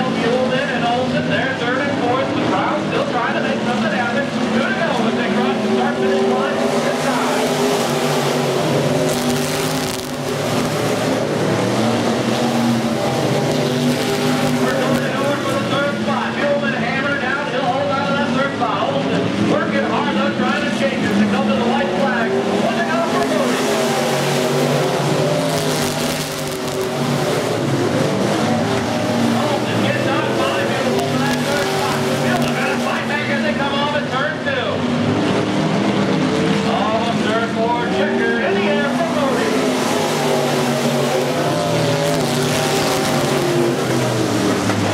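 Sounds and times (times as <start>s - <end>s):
race car engines running hard: 0.0s - 44.9s
voices: 14.6s - 24.2s, 28.3s - 34.8s, 36.6s - 42.8s.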